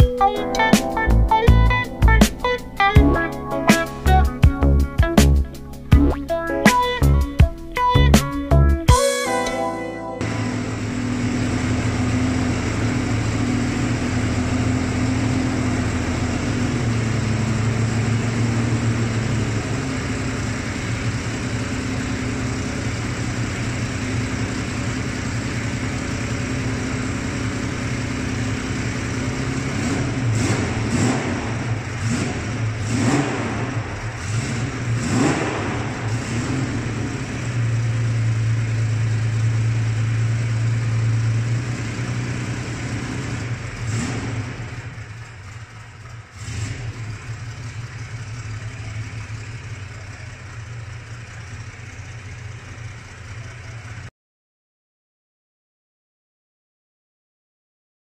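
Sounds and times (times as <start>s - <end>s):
car engine idling and revving: 1.0s - 8.9s, 10.2s - 54.1s.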